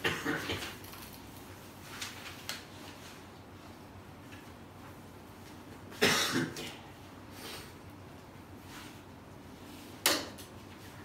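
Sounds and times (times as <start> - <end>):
man coughing: 0.0 - 0.8, 6.0 - 6.8.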